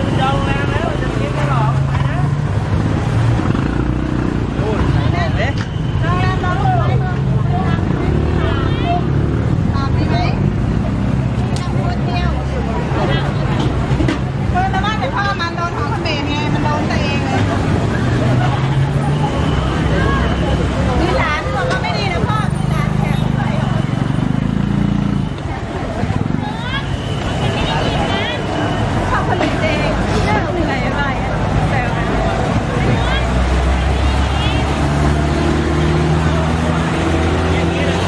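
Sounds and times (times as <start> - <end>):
people talking: 0.0 - 2.8, 3.4 - 38.0
low hum of traffic: 0.0 - 38.0.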